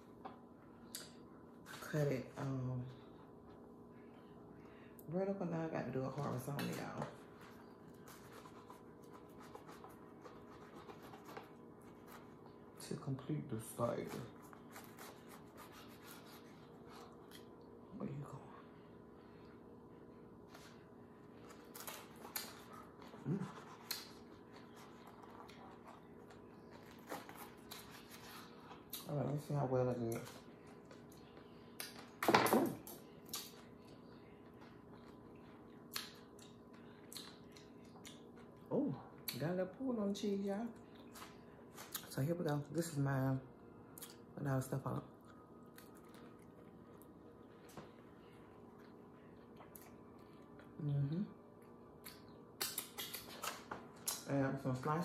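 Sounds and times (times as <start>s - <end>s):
faint steady hum: 0.0s - 55.0s
knife sawing through bread rolls: 13.9s - 17.1s.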